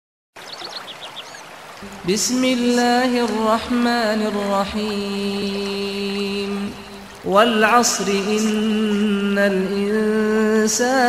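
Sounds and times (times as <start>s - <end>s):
rushing water: 0.4s - 11.0s.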